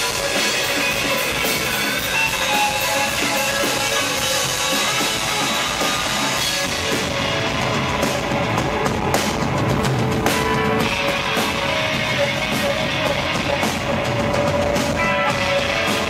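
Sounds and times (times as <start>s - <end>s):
bass guitar: 0.0s - 16.0s
distorted electric guitars: 0.0s - 16.0s
drum kit: 0.0s - 16.0s.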